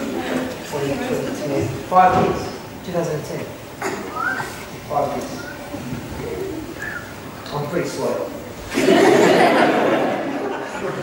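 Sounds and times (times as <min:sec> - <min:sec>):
children's voices murmuring: 0:00.0 - 0:01.9, 0:03.5 - 0:08.7
high-pitched vocal sounds: 0:04.0 - 0:07.5.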